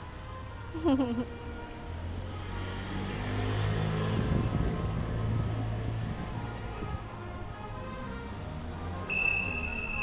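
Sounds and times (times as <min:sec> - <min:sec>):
car driving past: 0:02.2 - 0:06.0.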